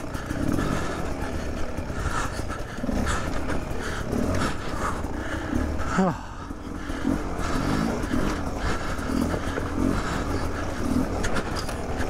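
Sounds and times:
dirt bike engine at low revs: 0.0s - 12.0s
person breathing hard: 0.0s - 12.0s.

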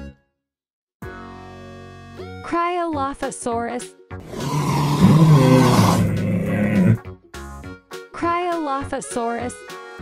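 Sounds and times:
low rasping dinosaur roar: 4.2s - 7.0s.

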